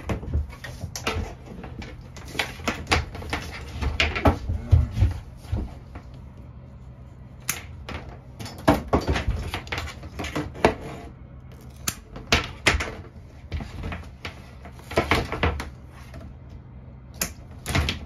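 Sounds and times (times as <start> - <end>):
snips cutting cable sheathing: 11.5 - 12.1.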